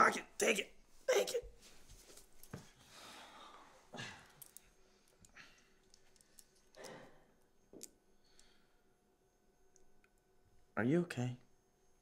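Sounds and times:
breaths: 0:02.7 - 0:07.4, 0:08.2 - 0:08.9.

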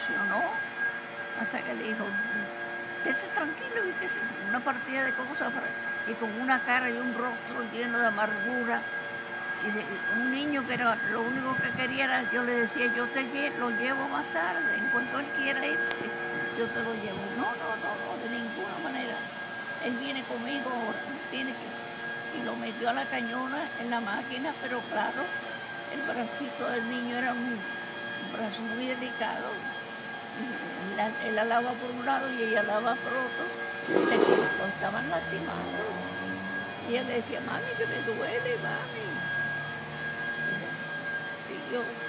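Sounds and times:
elderly woman speaking: 0:00.0 - 0:00.6, 0:01.4 - 0:08.9, 0:09.6 - 0:29.7, 0:30.3 - 0:36.2, 0:36.8 - 0:39.4, 0:41.4 - 0:42.0
high-pitched machine hum: 0:00.0 - 0:42.0
high-pitched whine: 0:00.0 - 0:42.0.

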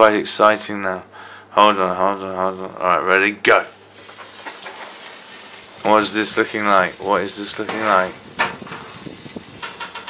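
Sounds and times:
bacon sizzling: 0:03.7 - 0:10.0.

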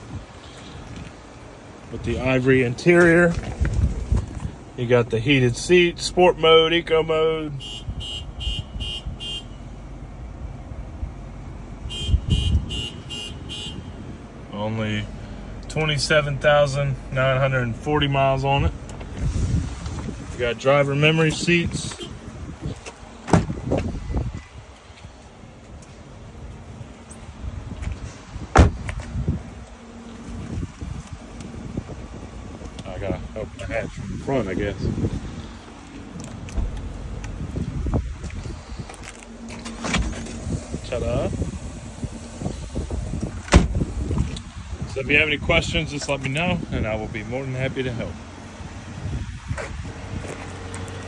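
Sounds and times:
low rumble of wind and handling: 0:00.0 - 0:51.0
car door thump: 0:23.2 - 0:23.9, 0:28.5 - 0:29.1, 0:43.4 - 0:43.8.

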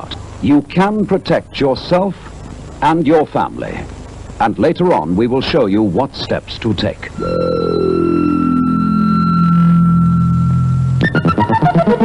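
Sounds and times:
steady high tone: 0:07.2 - 0:11.0
low tone sliding downward: 0:07.2 - 0:11.1.

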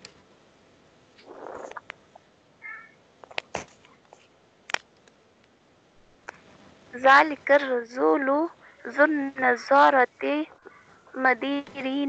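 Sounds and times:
soft rush of noise: 0:00.0 - 0:12.0.

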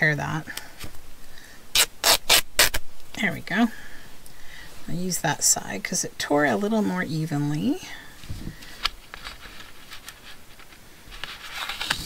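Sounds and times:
fabric tearing: 0:01.7 - 0:02.8.

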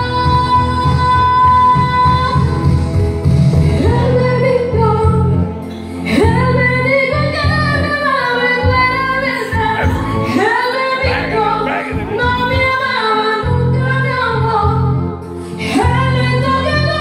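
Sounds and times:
recorded backing track: 0:00.0 - 0:17.0
woman singing karaoke: 0:00.0 - 0:17.0.

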